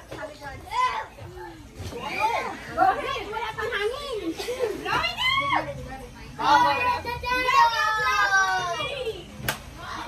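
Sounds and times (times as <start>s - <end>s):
women whooping and squealing: 4.9s - 5.8s.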